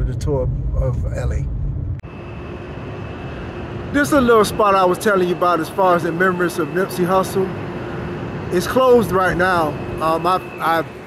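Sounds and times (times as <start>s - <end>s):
city street traffic hum: 0.0s - 11.0s.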